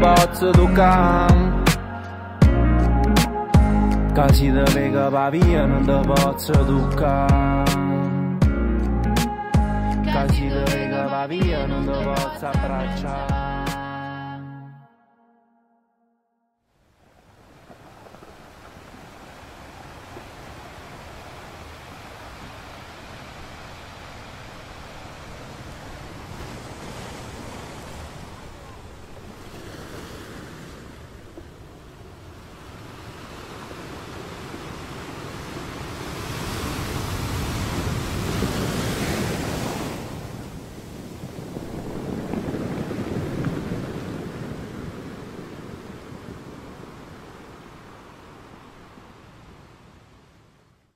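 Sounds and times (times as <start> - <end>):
sea waves washing onto beach: 17.0 - 50.1
wind on microphone: 30.5 - 49.8.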